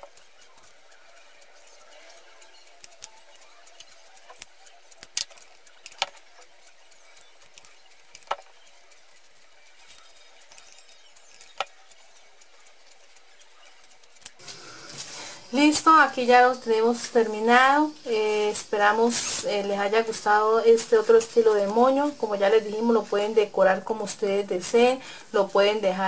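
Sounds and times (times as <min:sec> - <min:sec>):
faint steady hiss: 0:14.3 - 0:26.0.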